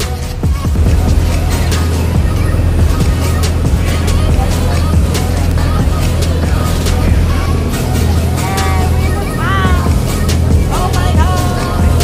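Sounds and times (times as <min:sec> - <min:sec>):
background music with a beat: 0:00.0 - 0:12.0
ferry engines droning: 0:00.0 - 0:12.0.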